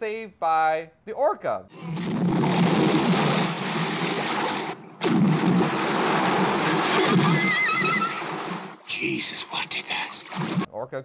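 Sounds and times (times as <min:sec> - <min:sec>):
water churning and splashing: 0:02.2 - 0:08.9
high wavering squeal: 0:06.9 - 0:08.2.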